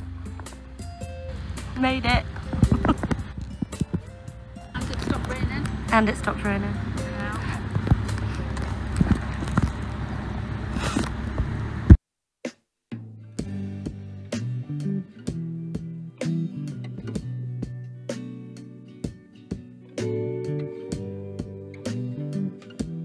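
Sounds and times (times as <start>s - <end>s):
plucked acoustic guitar music: 0.0s - 9.9s, 13.4s - 23.0s
boat rumble and wind noise: 0.0s - 11.9s.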